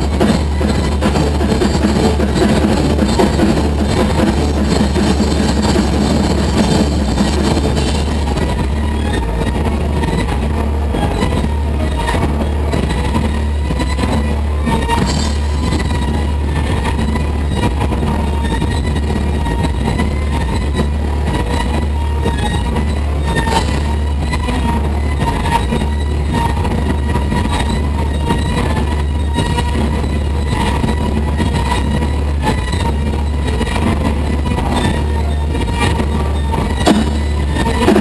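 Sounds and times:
droning amplified guitar and keyboard: 0.0 - 38.0
low hum: 0.0 - 38.0.

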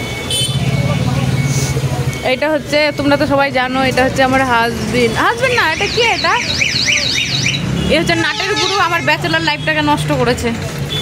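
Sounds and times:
car horn toot: 0.2 - 0.8, 5.4 - 9.8.

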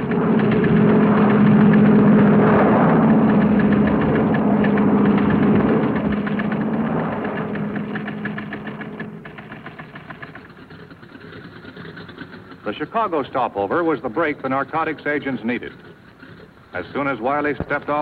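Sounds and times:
airliner engines droning: 0.0 - 18.0.

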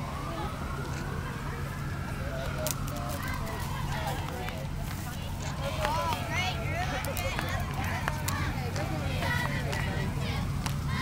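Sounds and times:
siren wailing: 0.0 - 4.8
low engine hum: 0.0 - 11.0.

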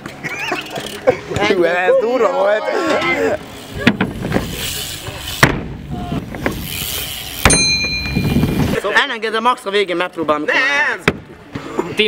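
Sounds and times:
bike tyres rolling on ramps: 0.0 - 11.6
bike knocking on ramp: 3.8 - 4.5.

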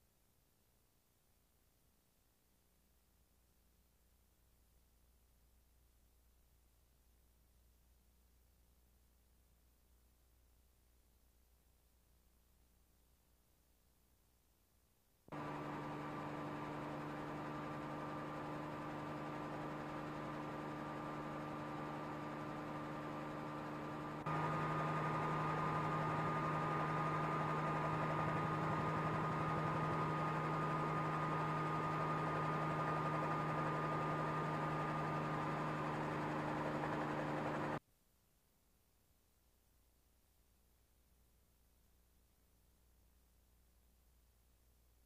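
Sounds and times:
helicopter engine and rotor drone: 15.3 - 37.8
steady whine: 15.3 - 37.8.

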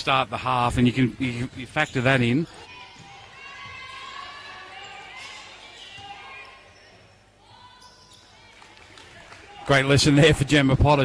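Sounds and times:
players calling out: 1.2 - 11.0.

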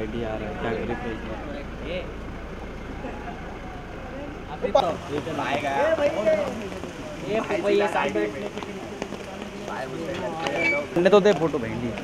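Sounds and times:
car engine idling: 0.0 - 12.0
indistinct voices: 0.0 - 12.0.

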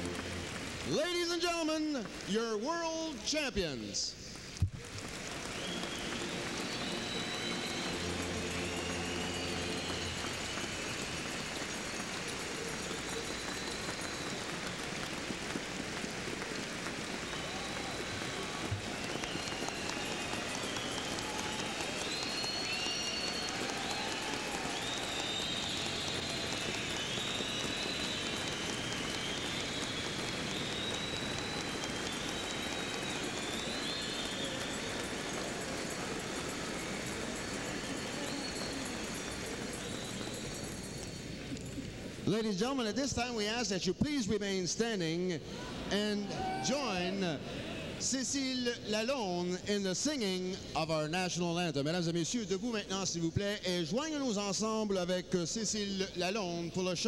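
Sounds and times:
crowd applauding and cheering: 0.0 - 3.3, 4.3 - 43.5, 45.4 - 49.5
shrill whistles: 5.4 - 15.6, 17.1 - 42.4.

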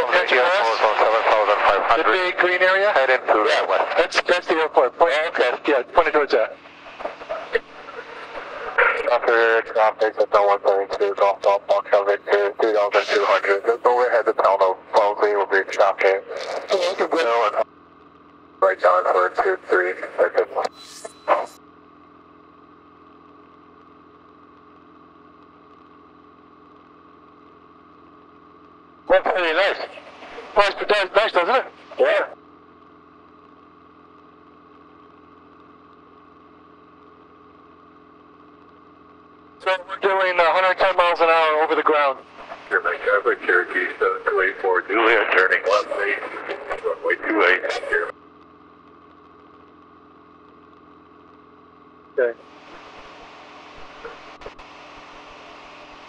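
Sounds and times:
aircraft engine and propeller drone: 0.0 - 17.6, 39.7 - 48.0
person speaking: 7.2 - 17.6, 41.8 - 48.1.

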